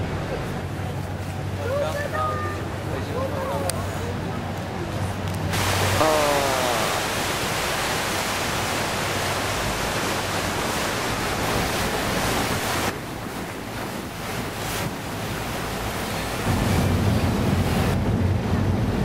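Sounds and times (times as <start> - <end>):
water noise: 0.0 - 19.0
wind rushing over microphone: 5.4 - 19.0.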